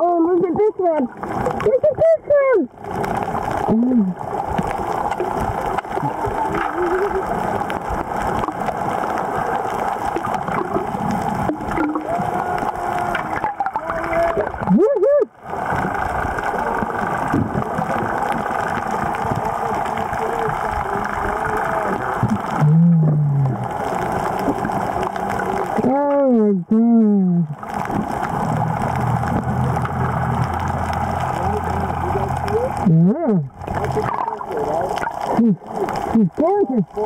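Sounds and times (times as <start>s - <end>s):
gurgling water: 0.0s - 37.0s
underwater hum: 0.0s - 37.0s.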